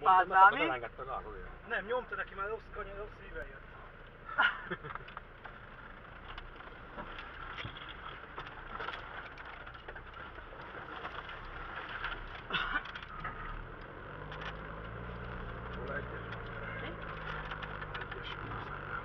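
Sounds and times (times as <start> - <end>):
vehicle engine and road hum: 0.0 - 19.0
body rattles and knocks: 4.1 - 19.0.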